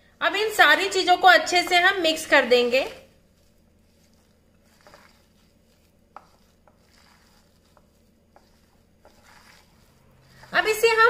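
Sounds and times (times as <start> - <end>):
hands mixing batter squishing: 0.2 - 11.0.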